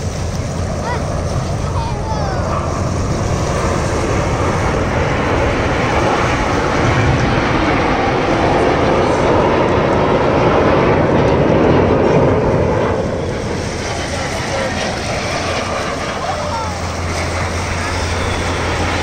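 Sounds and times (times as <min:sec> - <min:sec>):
jet engines roaring overhead: 0:00.0 - 0:19.0.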